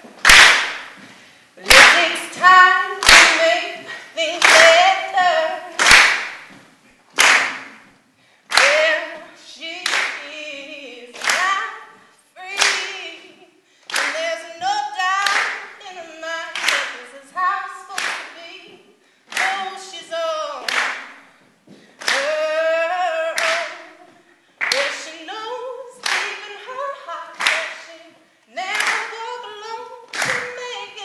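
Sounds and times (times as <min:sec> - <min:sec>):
hands clapping: 0:00.2 - 0:02.2, 0:03.0 - 0:04.9, 0:05.8 - 0:06.6, 0:07.2 - 0:07.9, 0:08.5 - 0:09.0, 0:09.8 - 0:10.3, 0:11.2 - 0:11.8, 0:12.6 - 0:13.0, 0:13.9 - 0:14.2, 0:15.2 - 0:15.7, 0:16.5 - 0:17.0, 0:18.0 - 0:18.3, 0:19.3 - 0:19.7, 0:20.6 - 0:21.2, 0:22.0 - 0:22.3, 0:23.4 - 0:23.8, 0:24.6 - 0:25.1, 0:26.0 - 0:26.5, 0:27.4 - 0:27.9, 0:28.7 - 0:29.2, 0:30.1 - 0:30.9
woman singing unaccompanied: 0:01.6 - 0:06.0, 0:08.5 - 0:21.1, 0:22.0 - 0:31.0.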